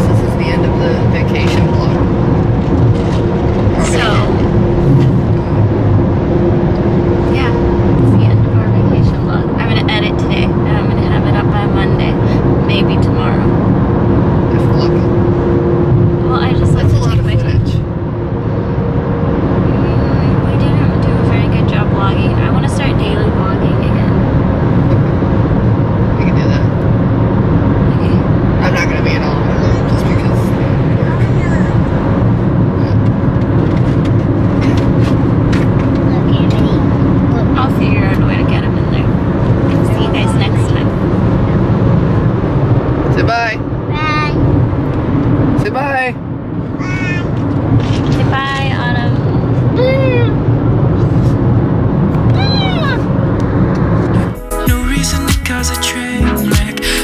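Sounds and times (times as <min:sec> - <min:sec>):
people talking: 0:00.0 - 0:02.1, 0:03.7 - 0:05.6, 0:07.2 - 0:13.6, 0:14.5 - 0:15.1, 0:16.2 - 0:17.9, 0:19.7 - 0:25.3, 0:26.2 - 0:26.7, 0:27.9 - 0:31.9, 0:32.8 - 0:33.0, 0:34.6 - 0:35.1, 0:36.0 - 0:41.6, 0:43.2 - 0:44.4, 0:45.6 - 0:46.2, 0:46.8 - 0:50.4, 0:52.2 - 0:53.1
car cabin road rumble: 0:00.0 - 0:55.1.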